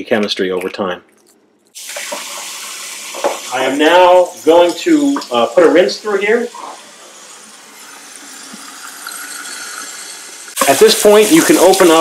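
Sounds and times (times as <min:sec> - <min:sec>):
faucet running into sink: 0:01.8 - 0:04.0, 0:06.2 - 0:12.0.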